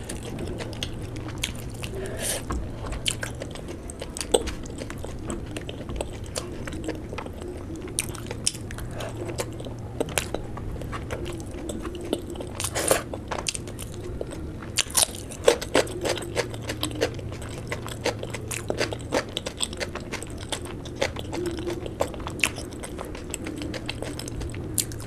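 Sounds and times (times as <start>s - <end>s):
person chewing: 0.0s - 25.0s.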